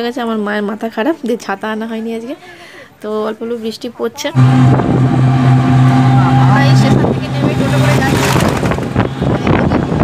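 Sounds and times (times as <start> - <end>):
auto-rickshaw motor humming: 4.4 - 10.0
road and wind noise: 4.4 - 10.0.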